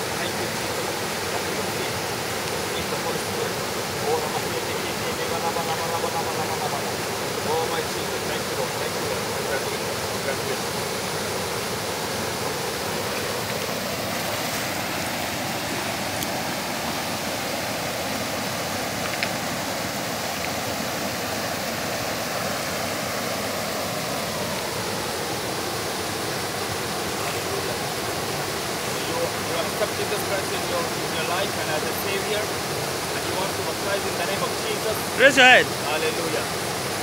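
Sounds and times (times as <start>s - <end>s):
waterfall rushing water: 0.0s - 37.0s.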